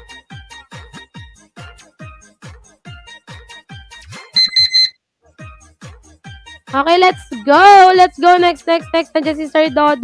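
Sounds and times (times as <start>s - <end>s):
electronic dance music: 4.4s - 4.9s
timer alarm beeping: 4.4s - 5.0s.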